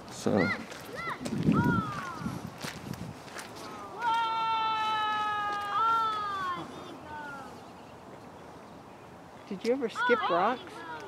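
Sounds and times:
high drawn-out cry: 3.8 - 7.6.

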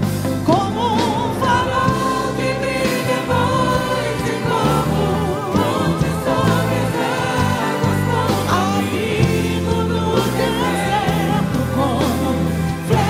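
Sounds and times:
women singing worship song: 0.4 - 13.0.

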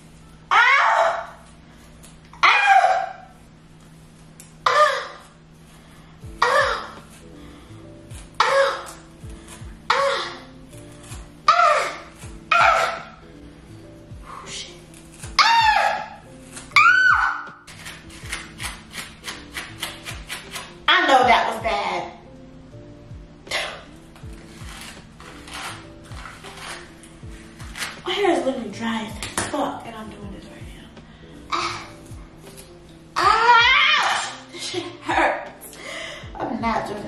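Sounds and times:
background music low held notes: 0.0 - 37.0
comb dragged through hair: 24.3 - 28.1.

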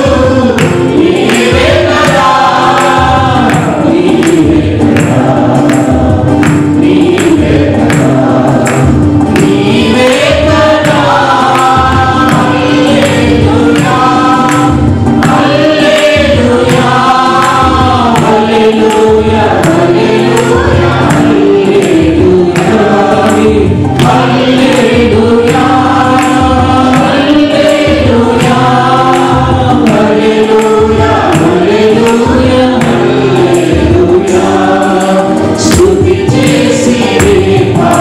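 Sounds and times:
instrumental accompaniment with beat: 0.0 - 38.0
mixed choir singing in unison: 0.0 - 38.0.

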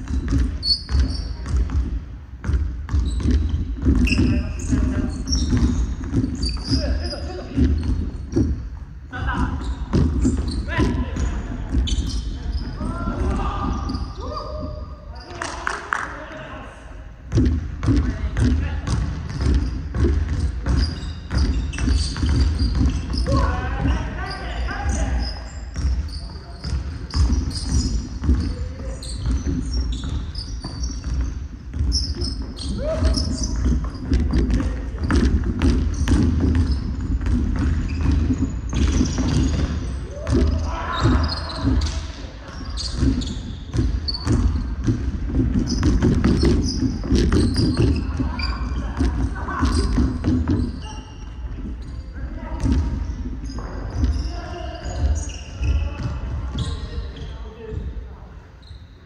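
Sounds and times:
basketball bouncing on hardwood: 0.0 - 8.7, 9.3 - 13.8, 17.3 - 24.0, 25.8 - 42.0, 42.7 - 50.8.

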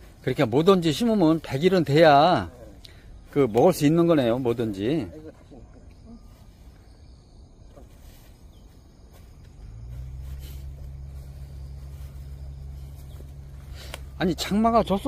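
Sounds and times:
low steady engine hum: 0.0 - 15.0
faint clicks: 13.7 - 14.2.

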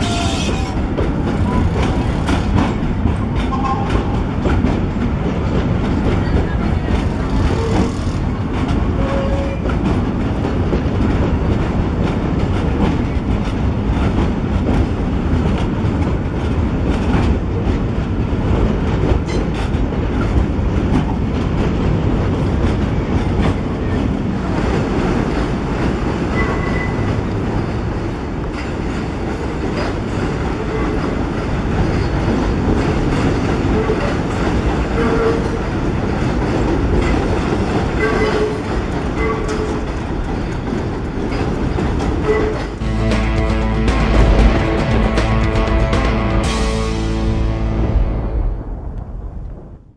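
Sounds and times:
subway train rumbling: 0.0 - 49.9.

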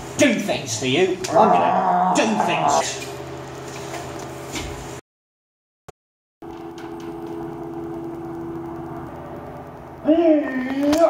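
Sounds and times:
mechanical hum: 0.0 - 5.0, 6.4 - 11.0.

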